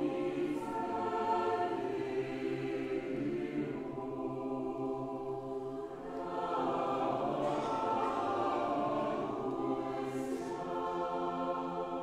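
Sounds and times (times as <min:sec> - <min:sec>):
mixed choir singing chords: 0:00.0 - 0:12.0.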